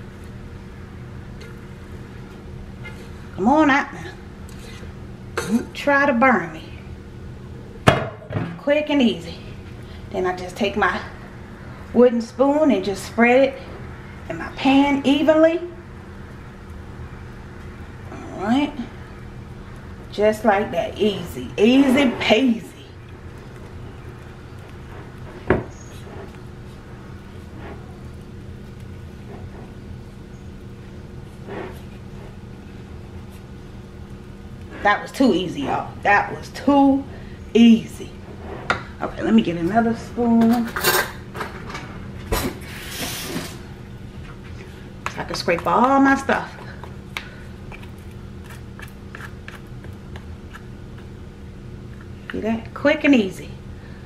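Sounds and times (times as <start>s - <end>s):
steady low hum: 0.0s - 54.0s
wooden spoon scraping dish: 31.4s - 32.4s, 47.7s - 51.1s
spoon scraping sticky cereal mix: 44.5s - 51.2s.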